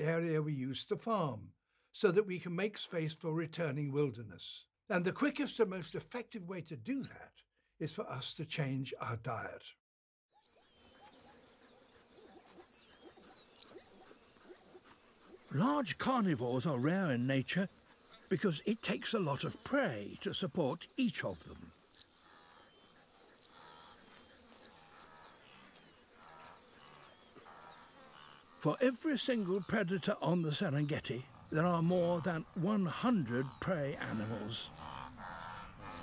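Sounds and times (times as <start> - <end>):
bird-like chirps: 10.3 - 36.0
animal calls: 10.4 - 36.0
high insect hum: 10.4 - 36.0.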